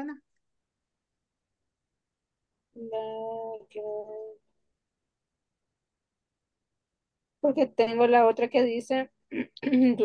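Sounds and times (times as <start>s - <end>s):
woman speaking: 7.4s - 10.0s.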